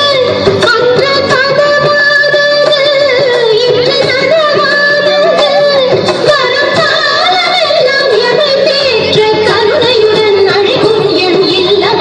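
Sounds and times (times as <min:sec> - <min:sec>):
instrumental dance music: 0:00.0 - 0:12.0.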